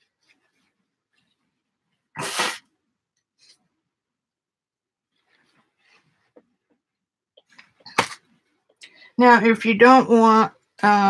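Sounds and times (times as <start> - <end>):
person sneezing: 2.2 - 2.7.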